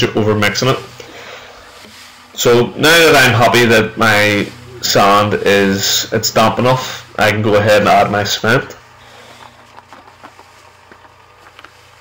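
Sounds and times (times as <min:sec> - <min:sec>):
cement mixer motor hum: 0:00.0 - 0:12.0
light ticks of mix tumbling: 0:09.0 - 0:12.0.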